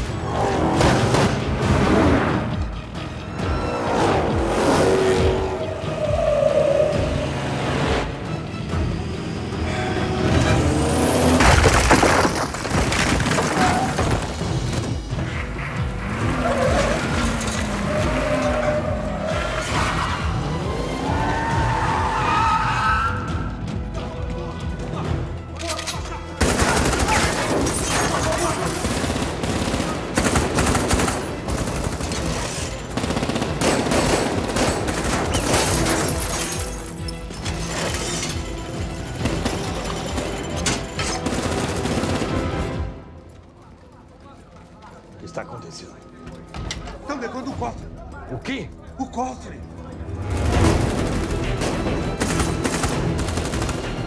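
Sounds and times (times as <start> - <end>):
film score music: 0.0 - 54.0
crashing debris: 11.2 - 15.0.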